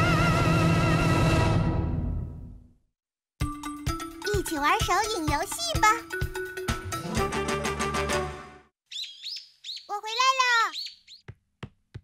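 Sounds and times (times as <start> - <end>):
birds chirping: 8.9 - 11.3.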